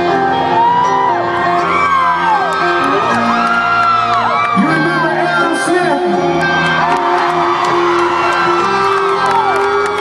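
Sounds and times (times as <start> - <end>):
crowd cheering: 0.0 - 5.5, 6.2 - 10.0
rock band playing live: 0.0 - 10.0.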